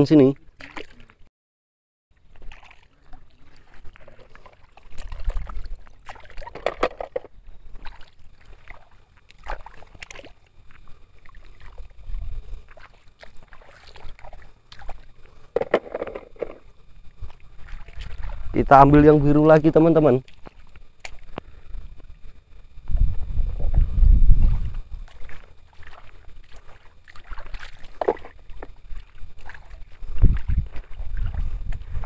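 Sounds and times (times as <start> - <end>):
river water sloshing and splashing: 0.4 - 1.3, 2.2 - 18.6, 20.0 - 21.7, 22.8 - 32.0.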